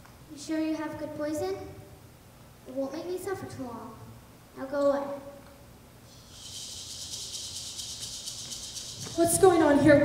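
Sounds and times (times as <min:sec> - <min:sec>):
rapid high rattling hiss: 0:06.1 - 0:09.8.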